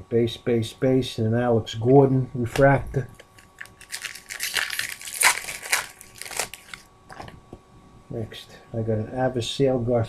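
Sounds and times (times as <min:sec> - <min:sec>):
foil wrapper crinkling: 0:03.1 - 0:07.3.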